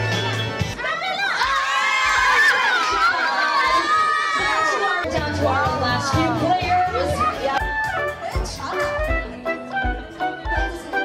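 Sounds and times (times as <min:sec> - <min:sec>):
background music: 0:00.0 - 0:00.8, 0:05.0 - 0:11.0
children calling and chattering: 0:00.6 - 0:09.4.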